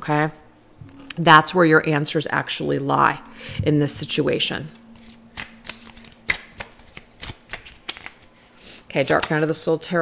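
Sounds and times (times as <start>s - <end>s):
cards shuffled by hand: 5.0s - 8.5s.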